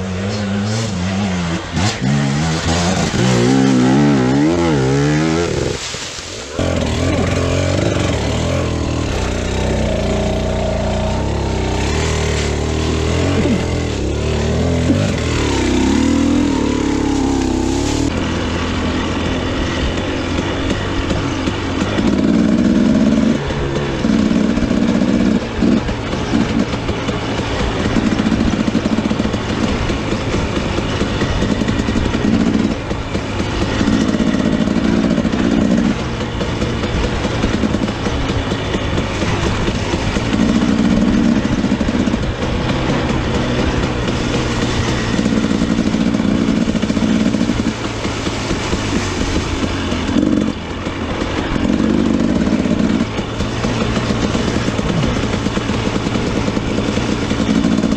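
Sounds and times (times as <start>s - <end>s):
dirt bike engine revving: 0.0s - 57.9s.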